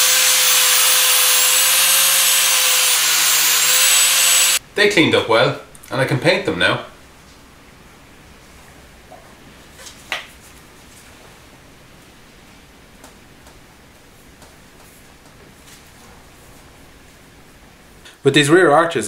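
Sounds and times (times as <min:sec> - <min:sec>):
quiet room hiss: 0:04.6 - 0:19.0.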